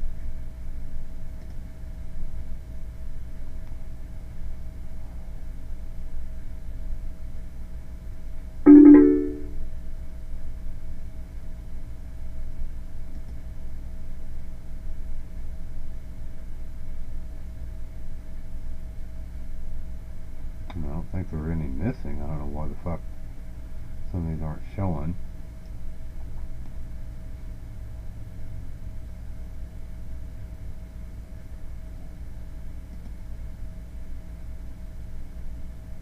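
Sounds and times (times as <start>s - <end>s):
computer alert chime: 8.7s - 9.6s
faint steady tone: 8.7s - 9.6s.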